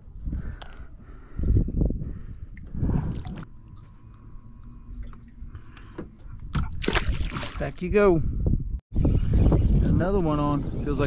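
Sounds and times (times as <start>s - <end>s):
water splashing from thrashing fish: 6.6s - 7.6s.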